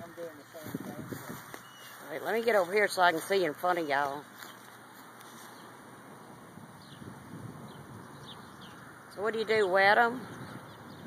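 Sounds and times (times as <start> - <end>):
faint outdoor background noise: 0.0 - 11.0
bird chirps: 1.6 - 2.0, 7.7 - 9.0.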